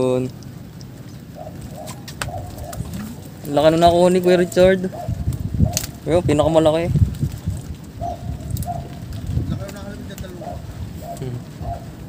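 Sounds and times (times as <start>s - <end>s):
dove cooing: 1.2s - 3.4s, 4.3s - 5.9s, 7.9s - 9.4s, 10.3s - 12.0s.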